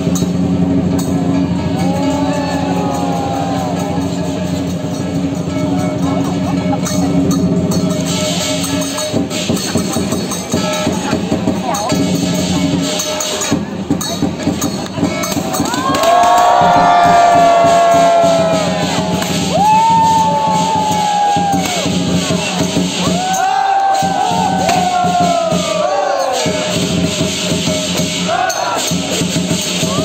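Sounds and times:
drum gong and cymbal music: 0.0 - 30.0
crowd cheering: 1.0 - 4.7, 15.3 - 27.2, 28.0 - 30.0.

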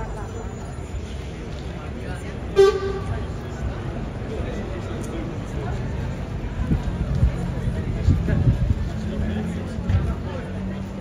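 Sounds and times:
outdoor street noise: 0.0 - 11.0
vehicle horn toot: 2.6 - 3.2.

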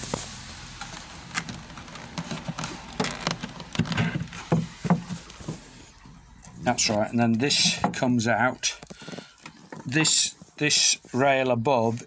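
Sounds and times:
wooden knocks and clatters: 1.4 - 10.6.

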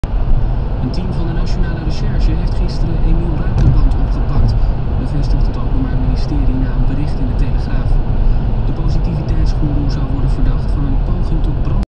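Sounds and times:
car road and engine rumble: 0.0 - 11.8
person talking: 0.8 - 8.0, 8.7 - 11.9.

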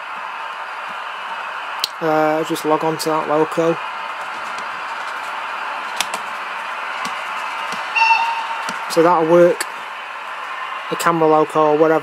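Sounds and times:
steady hiss: 0.0 - 12.0
short high tone: 8.0 - 8.6.

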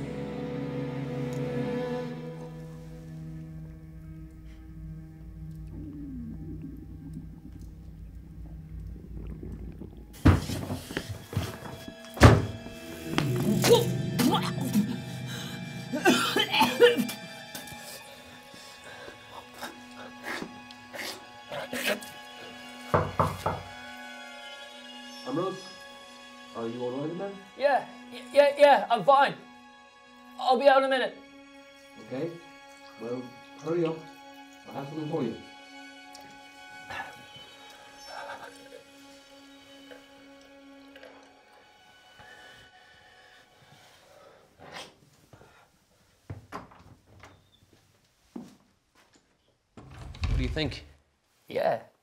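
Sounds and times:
low droning score: 0.0 - 21.5
door shutting with heavy thud: 12.2 - 12.6, 49.8 - 50.7.

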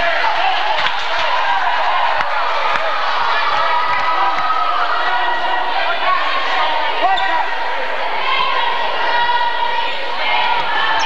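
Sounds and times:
crowd chatter and shouting: 0.0 - 11.0.

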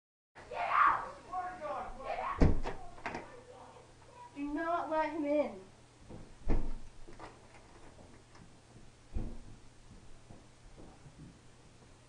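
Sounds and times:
knocks on wooden door: 6.1 - 6.8, 9.1 - 9.6.

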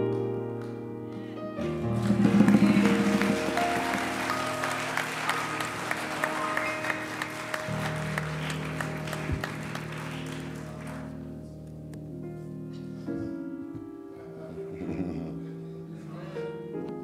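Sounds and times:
congregation applauding: 1.6 - 11.5
sustained organ chords: 1.6 - 12.2.

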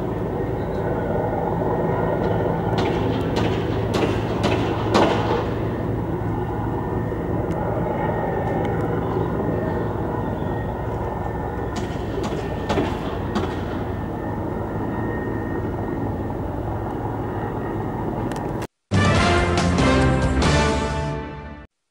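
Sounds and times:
vehicle engines rumbling: 0.0 - 18.7
sharp knocks: 2.8 - 5.6, 11.8 - 13.8.

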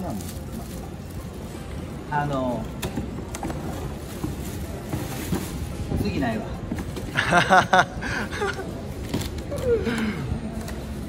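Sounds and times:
plastic flower sleeves rustling: 0.0 - 6.5.

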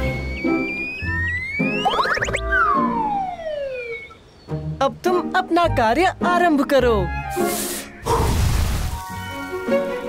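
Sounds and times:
downward sliding whistle: 0.0 - 4.2.

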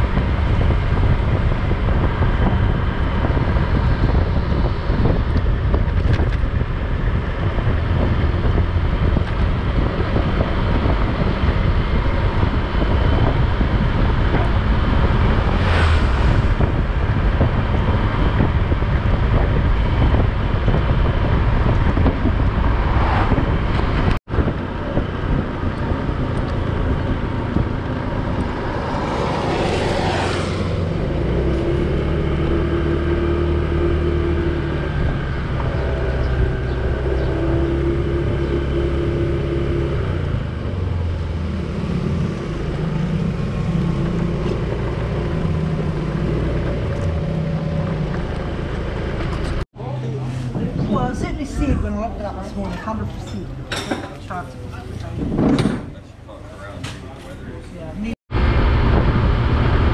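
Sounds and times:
wind and road noise: 0.0 - 59.9.

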